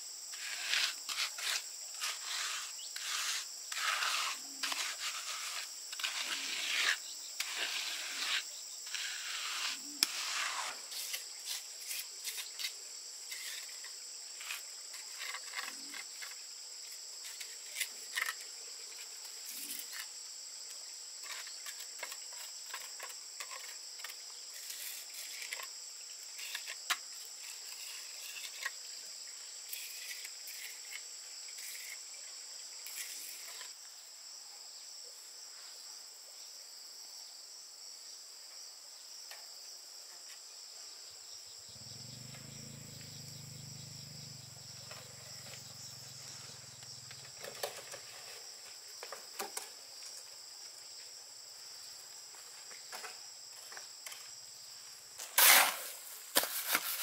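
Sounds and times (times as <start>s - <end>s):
high-pitched insect chorus: 0.0s - 57.0s.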